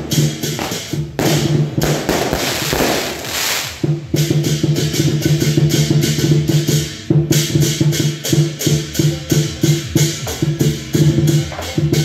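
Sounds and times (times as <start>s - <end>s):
drum gong and cymbals playing: 0.0s - 12.0s.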